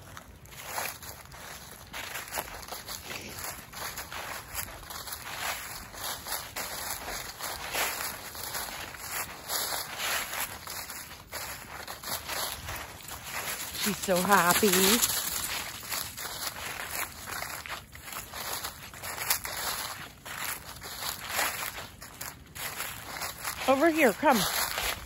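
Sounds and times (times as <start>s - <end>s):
footsteps in dry leaves: 0.0s - 25.0s.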